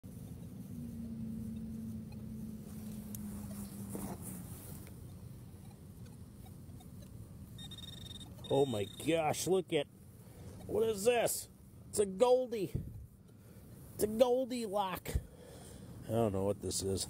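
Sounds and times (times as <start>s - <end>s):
low steady hum: 0.0s - 17.0s
high electronic tone: 5.6s - 9.3s.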